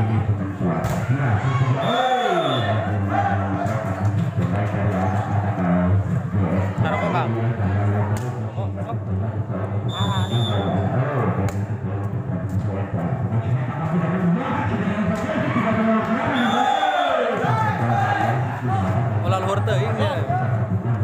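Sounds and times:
music: 0.0s - 21.0s
spectators talking and calling out: 0.0s - 21.0s.

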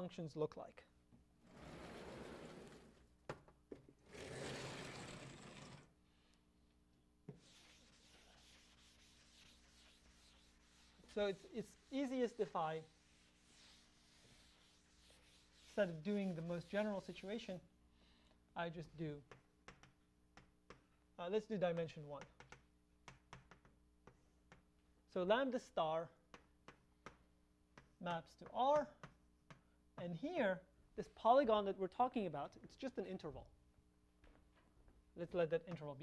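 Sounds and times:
chalk clicking on blackboard: 7.3s - 15.8s.

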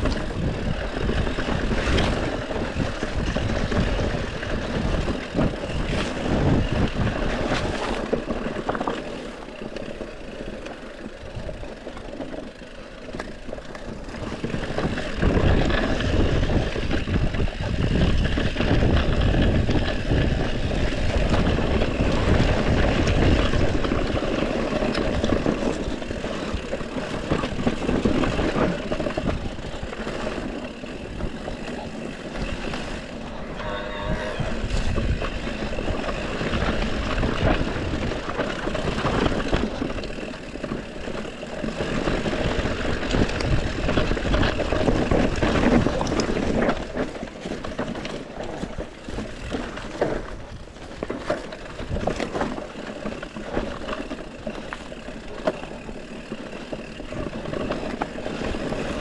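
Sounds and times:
wind buffeting microphone: 0.0s - 8.9s, 13.9s - 54.4s
bike rattling: 0.0s - 59.0s
bike tyre noise: 0.0s - 59.0s
brief squeal: 33.4s - 34.8s.

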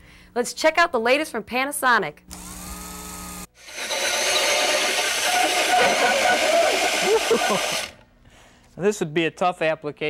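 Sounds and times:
drill hole saw cutting plywood: 3.6s - 8.0s.

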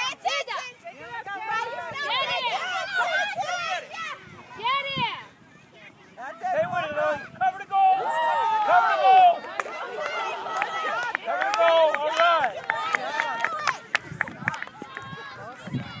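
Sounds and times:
young children shouting: 1.5s - 13.9s.

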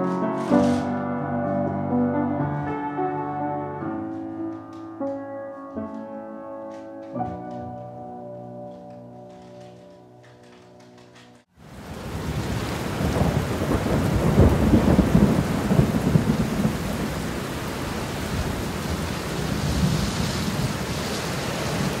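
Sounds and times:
heavy rain: 11.6s - 22.0s
thunder rumble: 11.6s - 22.0s.

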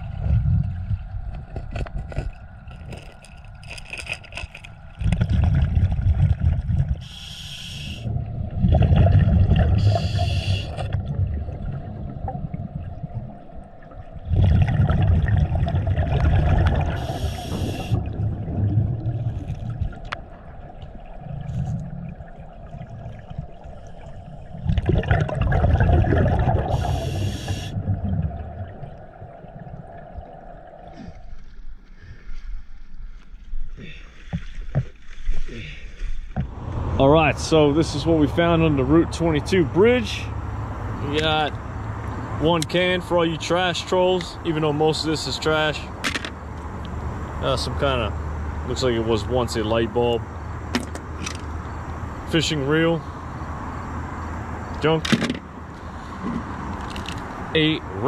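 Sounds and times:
exhaled bubbles rumbling: 0.0s - 3.8s, 4.7s - 7.2s, 8.0s - 31.8s
regulator hiss: 7.0s - 8.0s, 9.8s - 10.8s, 17.0s - 18.0s, 26.7s - 27.8s.

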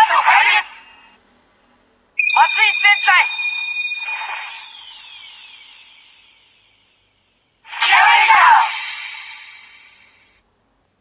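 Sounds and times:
shimmering falling tones: 2.2s - 10.3s
toy voice clip: 2.3s - 3.4s, 7.7s - 9.3s
loud electronic burst: 2.3s - 10.3s.

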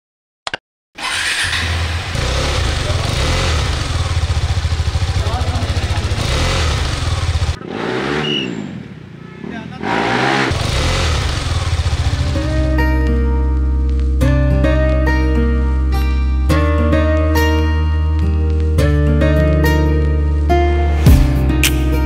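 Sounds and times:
motorcycle engine revving: 1.0s - 13.2s.

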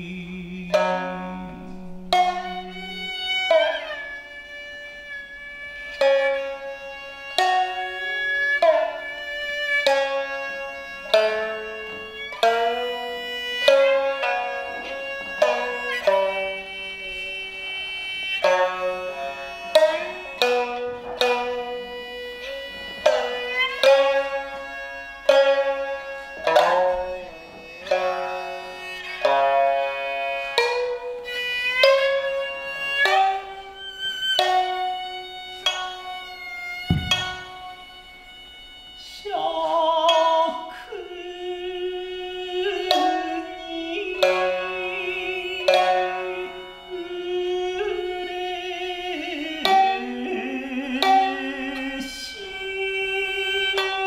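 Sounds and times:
person singing wavering melody: 0.0s - 4.0s, 38.9s - 54.0s
shamisen plucked: 0.0s - 54.0s
dull low thump: 36.9s - 37.7s.

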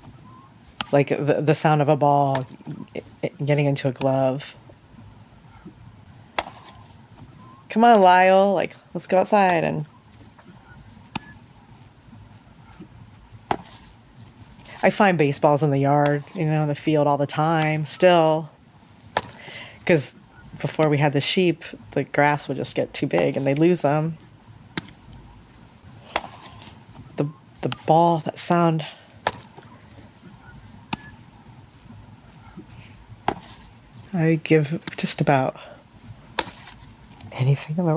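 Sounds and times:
baseball smacking into glove: 6.3s - 6.8s, 13.5s - 13.8s, 19.1s - 19.4s, 26.1s - 26.5s, 29.2s - 29.6s, 30.9s - 31.1s, 33.2s - 33.6s, 36.3s - 36.8s.

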